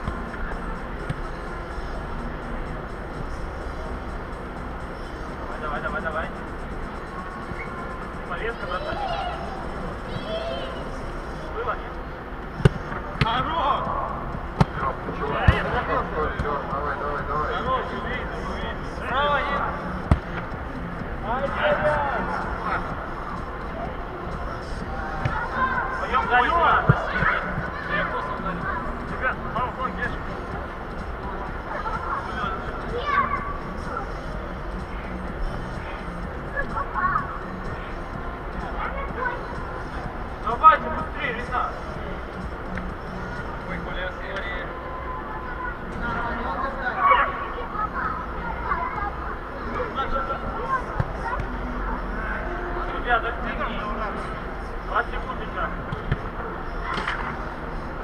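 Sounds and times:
ball kicks: 12.6s - 13.4s, 20.1s - 20.4s, 55.9s - 56.2s.

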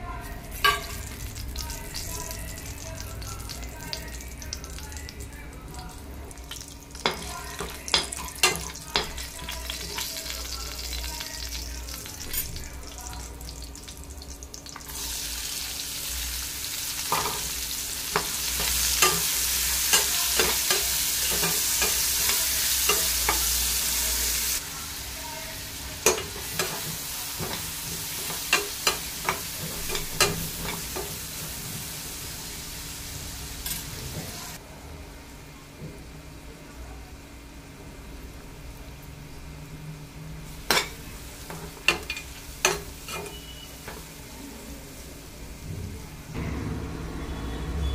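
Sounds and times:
spices frying in hot oil: 0.0s - 34.6s, 37.2s - 46.4s
onions sizzling loudly: 5.9s - 34.6s, 40.2s - 45.6s.

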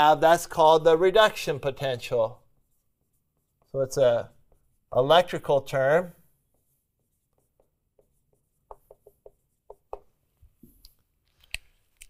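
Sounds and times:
marker writing on whiteboard: 0.1s - 10.9s.

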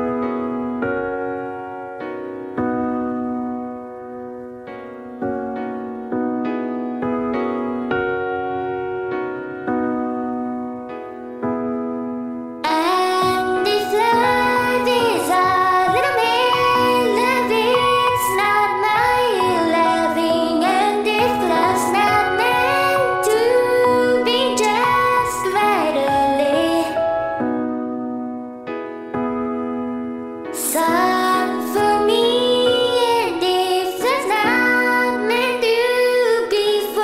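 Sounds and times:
person singing a ballad: 12.6s - 28.0s, 30.5s - 37.0s.

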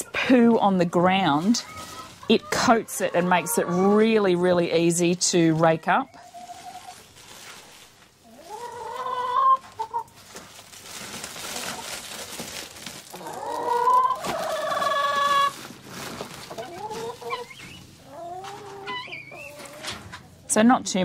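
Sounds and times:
hens clucking and calling: 0.0s - 7.1s, 8.2s - 10.2s, 13.0s - 20.5s
powder rustling hiss: 4.8s - 8.2s.

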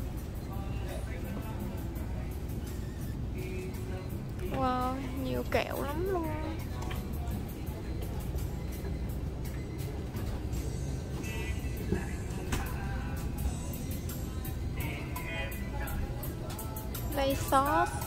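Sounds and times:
background music: 0.0s - 18.0s.

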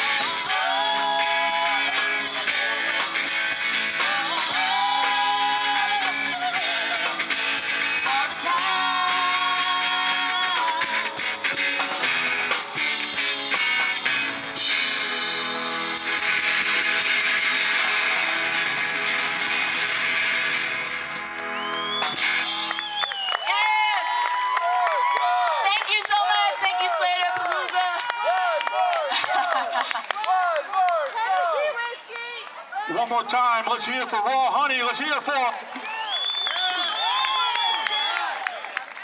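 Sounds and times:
crowd cheering and shouting: 0.0s - 12.2s, 16.0s - 39.0s
live rock band playing: 0.0s - 23.1s.

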